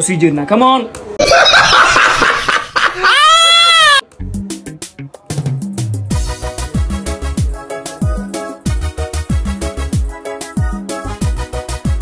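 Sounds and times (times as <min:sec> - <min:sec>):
music with bass and percussion: 0:04.1 - 0:12.0.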